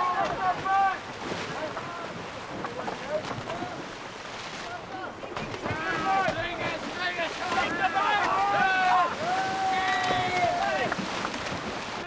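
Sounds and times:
boys yelling and shouting: 0.0s - 1.0s, 5.0s - 10.9s
splashing in water: 0.0s - 12.0s.

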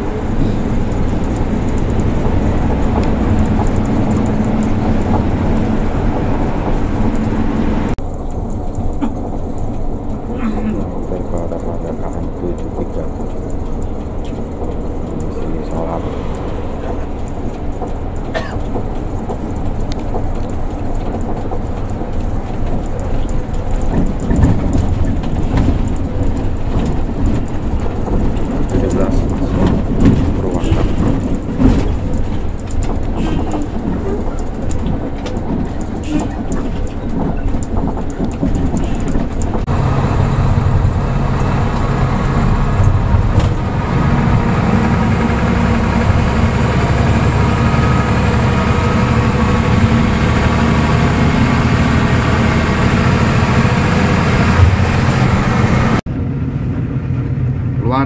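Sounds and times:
knocks and rattles: 0.0s - 39.8s
coach road and engine noise: 0.0s - 58.0s.

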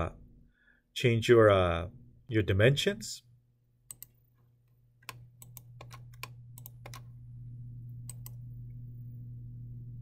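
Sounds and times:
steady low hum: 0.0s - 10.0s
computer mouse clicks: 3.9s - 4.2s, 5.0s - 7.1s, 8.0s - 8.4s.

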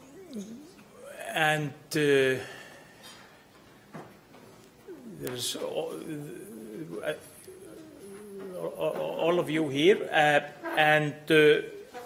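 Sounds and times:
man saying uh: 1.0s - 2.6s, 4.9s - 11.8s.

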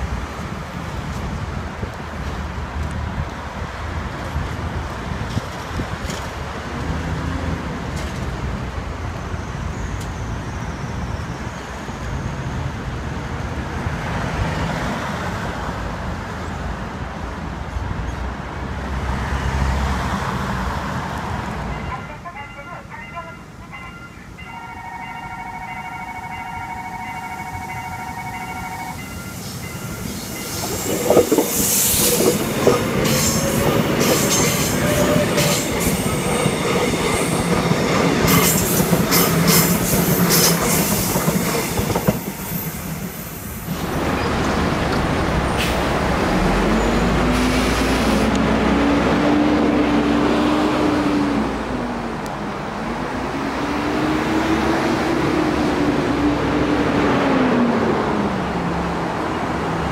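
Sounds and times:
electric train passing: 20.9s - 59.9s
level crossing warning signal: 21.7s - 31.3s
train wheel squeal and clatter: 29.2s - 44.4s
bus engine pulling away: 29.3s - 59.9s.

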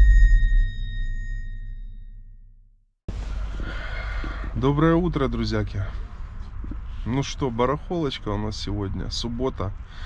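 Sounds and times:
bell-like ringing tones: 0.0s - 2.5s
deep bass boom: 0.0s - 2.8s.

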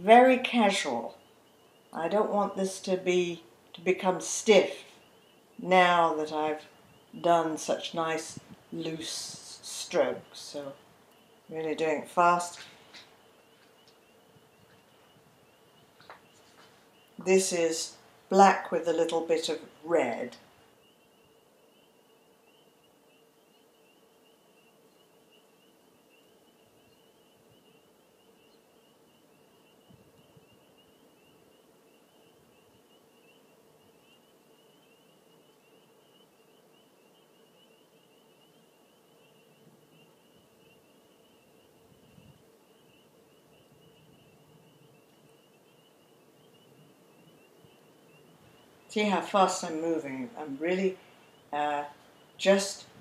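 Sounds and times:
faint low hum: 0.0s - 53.0s.

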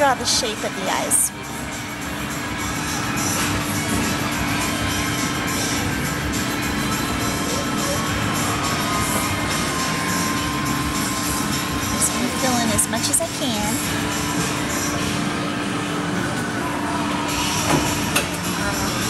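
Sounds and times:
background music: 0.0s - 19.0s
constant low hum: 0.0s - 19.0s.

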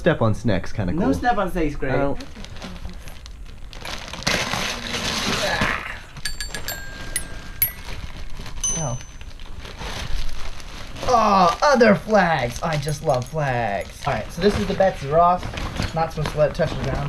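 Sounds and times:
wrapping paper rustling: 2.3s - 5.5s, 9.2s - 16.9s
toy xylophone notes: 6.3s - 9.2s.

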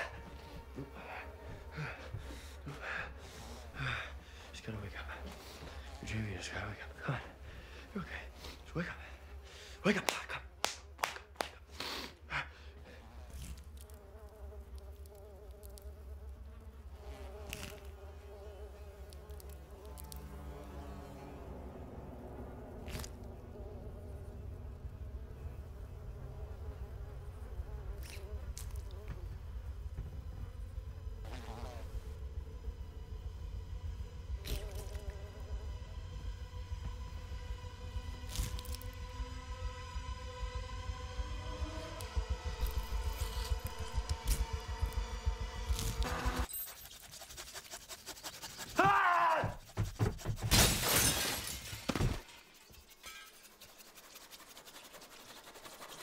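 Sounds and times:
low steady drone: 0.0s - 9.9s, 19.0s - 46.6s
deep rumble: 21.2s - 46.5s.

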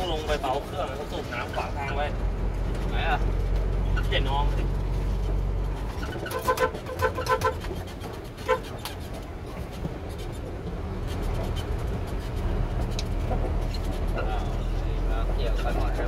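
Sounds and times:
truck engine running: 0.0s - 16.0s.

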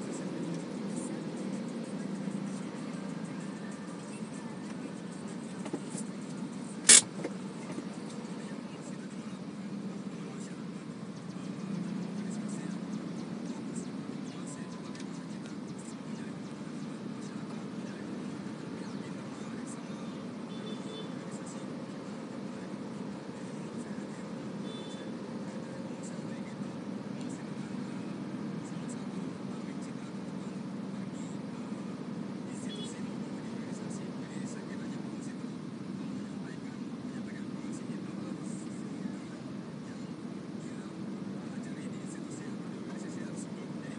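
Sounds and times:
car engine idling: 0.0s - 43.9s
sharp click: 6.8s - 7.3s.

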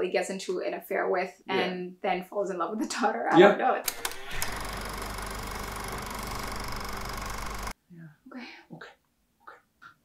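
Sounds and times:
low hum: 3.9s - 7.7s
projector click: 3.9s - 7.7s
film projector whirring and clattering: 3.9s - 7.8s.

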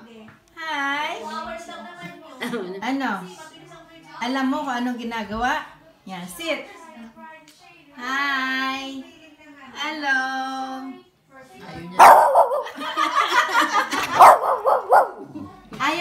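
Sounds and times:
small dog barking and yowling: 12.0s - 12.8s, 14.1s - 15.3s.

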